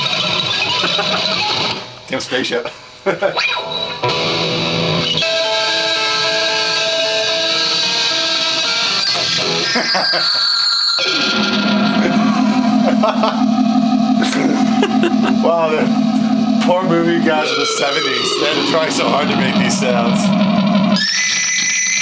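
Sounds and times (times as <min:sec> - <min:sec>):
spacey electric guitar tones: 0:03.4 - 0:22.0
low steady drone: 0:11.0 - 0:21.0.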